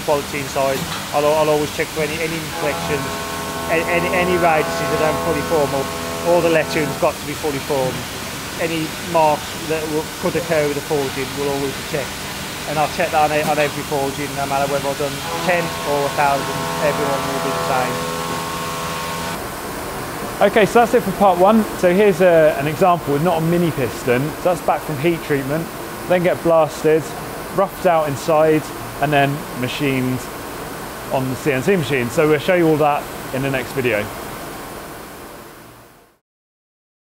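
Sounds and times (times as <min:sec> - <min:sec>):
steady hiss: 0:00.1 - 0:19.4
workshop machinery humming: 0:02.0 - 0:19.4.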